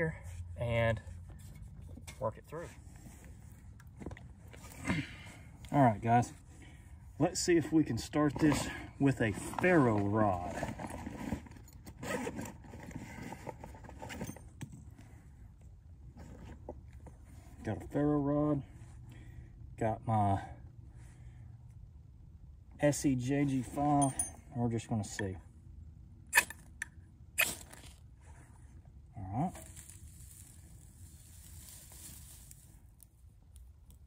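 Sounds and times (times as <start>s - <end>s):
gear rustling and scraping: 0.0s - 18.0s, 22.9s - 25.2s, 27.5s - 33.2s.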